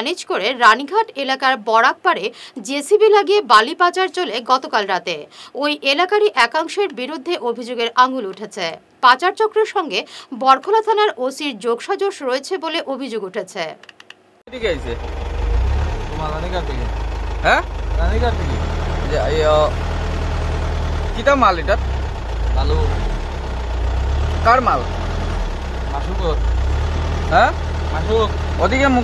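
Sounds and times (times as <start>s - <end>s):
voices: 14.5s - 15.2s, 15.9s - 19.8s, 21.0s - 23.3s, 24.4s - 25.0s, 25.8s - 26.5s, 27.2s - 29.0s
vehicle engine idling: 14.5s - 29.0s.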